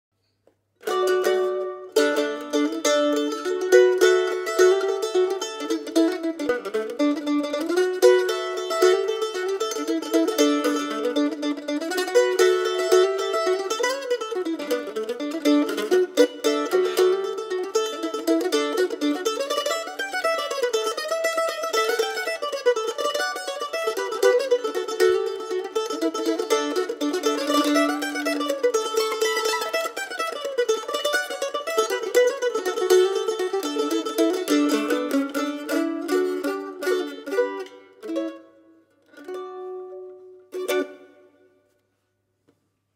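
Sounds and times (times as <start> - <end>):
mandolin playing folk tune: 0.6 - 42.0.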